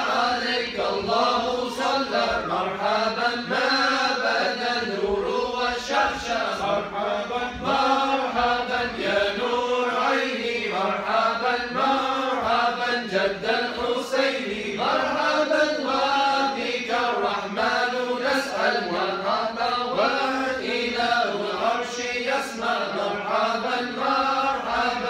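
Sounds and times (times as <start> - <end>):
men chanting in unison: 0.0 - 25.0.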